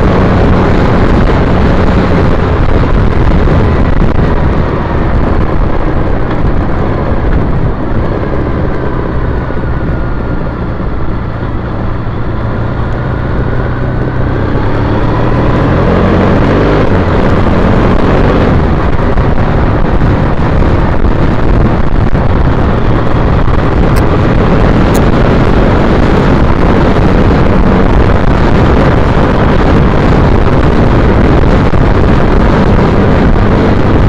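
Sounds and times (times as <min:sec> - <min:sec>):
motorcycle engine running: 0:00.0 - 0:34.0
wind rush on microphone: 0:00.0 - 0:34.0.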